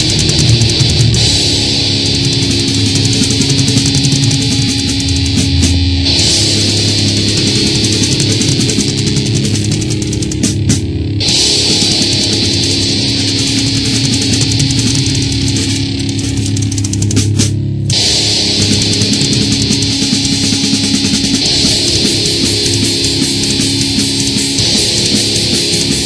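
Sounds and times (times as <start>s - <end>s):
bass: 0.0s - 26.0s
distorted electric guitar: 0.0s - 26.0s
drums: 0.0s - 26.0s
heavy metal song: 0.0s - 26.0s.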